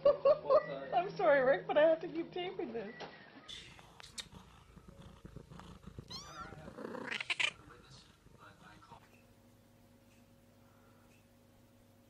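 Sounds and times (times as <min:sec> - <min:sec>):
kitten mewing: 0:03.5 - 0:08.0.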